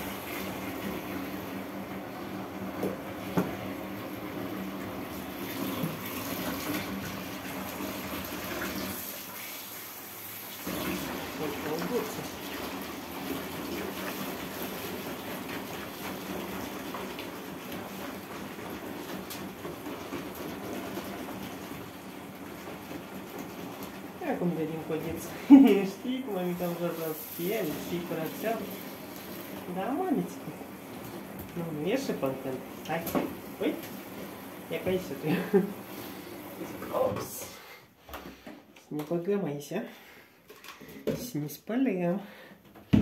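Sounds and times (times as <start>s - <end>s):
soapy water sloshing in basin: 0.0s - 37.7s.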